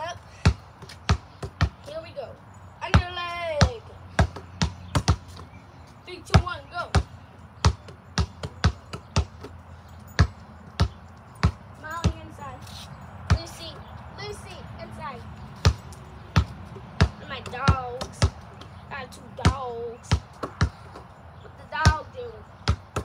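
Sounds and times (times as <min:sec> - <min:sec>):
basketball bouncing on concrete: 0:00.0 - 0:02.2, 0:02.8 - 0:12.6, 0:13.2 - 0:14.3, 0:15.6 - 0:23.0.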